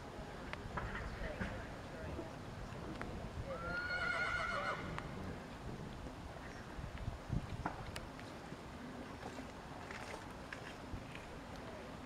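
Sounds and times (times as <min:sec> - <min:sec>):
horse whinnying: 0:03.6 - 0:05.0.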